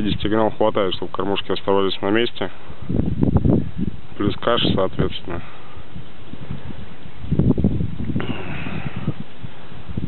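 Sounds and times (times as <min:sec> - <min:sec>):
wind buffeting microphone: 0:00.0 - 0:01.0, 0:02.3 - 0:10.0.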